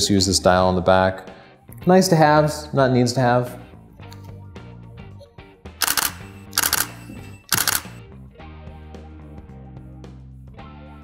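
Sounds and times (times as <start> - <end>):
background music: 0.0 - 11.0
camera shutter clicks: 5.8 - 8.0.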